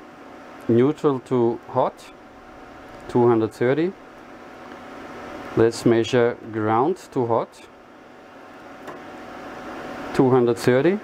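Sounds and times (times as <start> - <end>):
inverter hum and hiss: 0.0 - 11.0.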